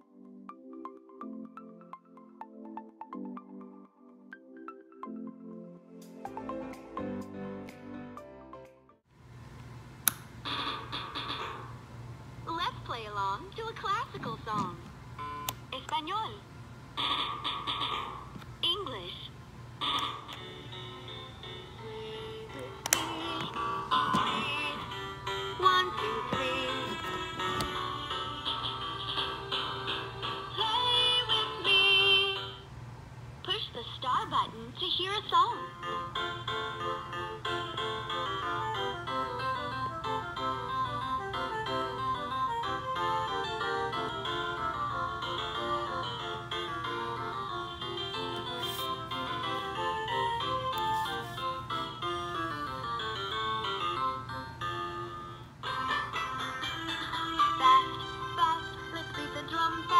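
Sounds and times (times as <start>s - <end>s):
electronic children's melody: 0.0s - 9.1s, 10.4s - 11.7s, 15.2s - 16.3s, 17.0s - 18.4s, 19.7s - 32.8s, 35.1s - 59.9s.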